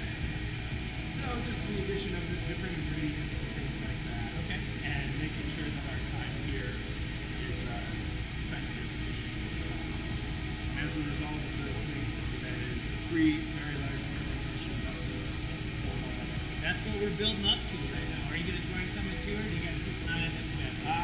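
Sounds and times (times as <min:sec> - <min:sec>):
low drone of equipment: 0:00.0 - 0:21.0
man talking: 0:01.0 - 0:15.6, 0:16.5 - 0:21.0.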